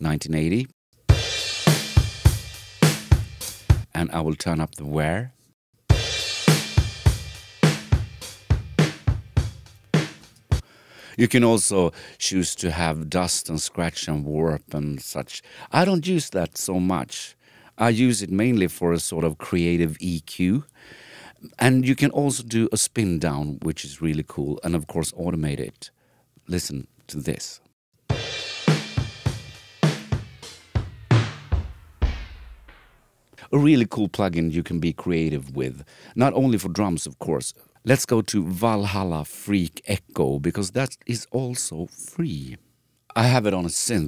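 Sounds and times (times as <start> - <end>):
drum kit groove with vinyl wear: 1.0 - 4.0, 5.8 - 10.7, 28.0 - 33.1
cymbals: 1.1 - 3.8, 5.9 - 10.6, 28.1 - 33.0.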